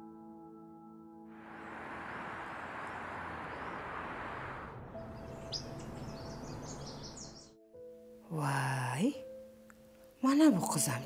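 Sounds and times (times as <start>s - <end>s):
city traffic noise: 1.4s - 7.4s
small birds chirping: 2.4s - 7.6s.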